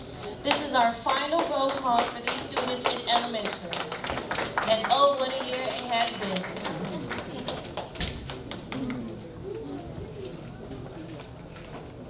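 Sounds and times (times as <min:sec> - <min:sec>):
scattered applause: 0:01.1 - 0:09.6
audience murmuring: 0:02.2 - 0:12.0.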